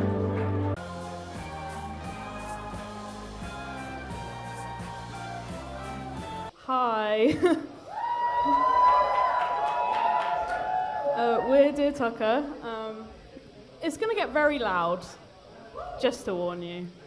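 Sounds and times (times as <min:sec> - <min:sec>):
music: 0:00.0 - 0:06.6.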